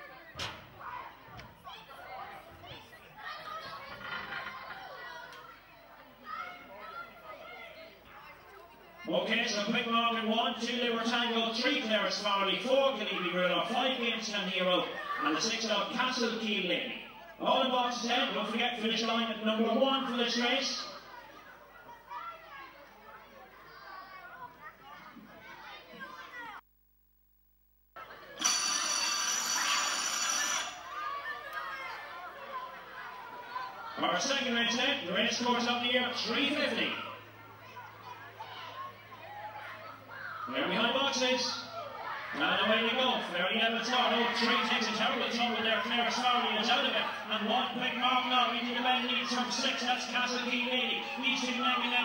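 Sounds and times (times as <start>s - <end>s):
people talking in background: 0.0s - 26.6s, 28.0s - 52.0s
electric bell ringing: 28.4s - 31.1s.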